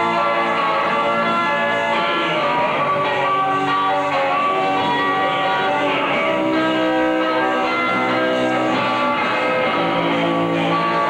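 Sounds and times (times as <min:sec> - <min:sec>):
ringing electric guitar chords: 0:00.0 - 0:11.0
rock band playing: 0:00.0 - 0:11.0.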